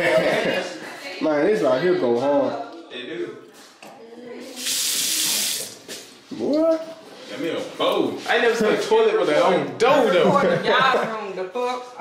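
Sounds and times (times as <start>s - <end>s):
faucet water running into sink: 4.5s - 5.8s.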